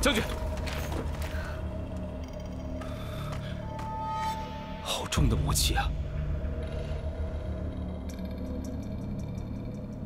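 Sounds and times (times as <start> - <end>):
low drone and rumble: 4.5 - 10.0.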